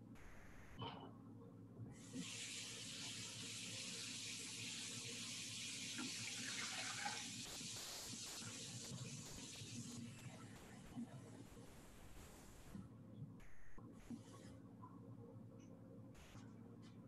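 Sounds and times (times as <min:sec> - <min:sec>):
tap running water: 0:02.1 - 0:09.8.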